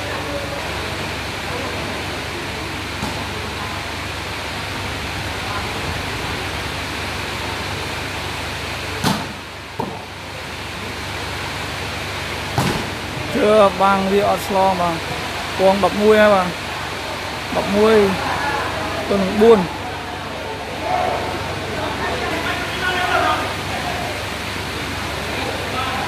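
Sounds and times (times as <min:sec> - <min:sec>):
murmur of crowd: 0:00.0 - 0:26.0
volleyball being struck: 0:09.0 - 0:10.0, 0:12.5 - 0:13.0.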